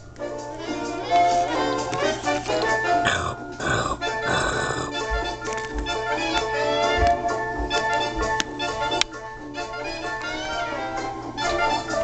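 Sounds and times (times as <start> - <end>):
growling vocal sounds: 3.0 - 5.1.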